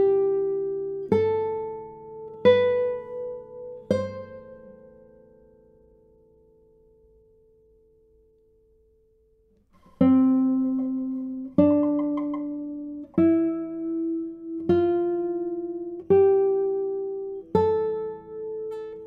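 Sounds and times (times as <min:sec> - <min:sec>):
classical guitar plucked notes: 0:00.0 - 0:19.0.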